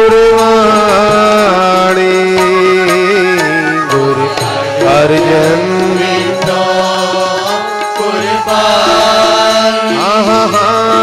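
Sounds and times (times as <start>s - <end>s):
congregation singing: 0.0s - 11.0s
instrumental accompaniment: 0.0s - 11.0s.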